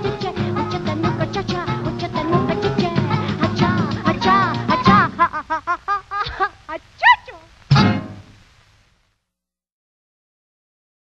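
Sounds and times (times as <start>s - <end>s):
person singing: 0.0s - 8.2s.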